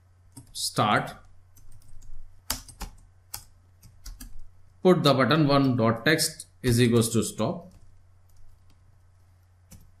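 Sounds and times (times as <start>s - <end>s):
computer keyboard typing: 0.3s - 0.6s, 1.5s - 4.5s, 6.7s - 10.0s.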